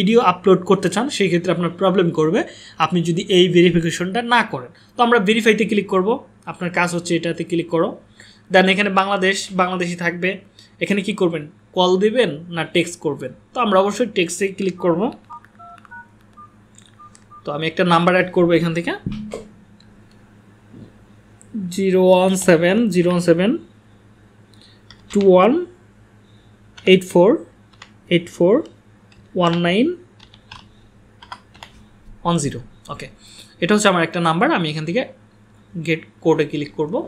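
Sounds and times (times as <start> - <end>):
man talking: 0.0 - 15.4, 17.4 - 19.1, 21.5 - 23.7, 25.1 - 25.8, 26.8 - 27.5, 28.1 - 28.7, 29.4 - 30.0, 32.2 - 35.2, 35.8 - 37.0
phone keypad touch-tone beeps: 14.8 - 17.5
computer keyboard keystrokes: 15.2 - 17.4, 24.9 - 25.3, 27.7 - 28.0, 30.2 - 31.8.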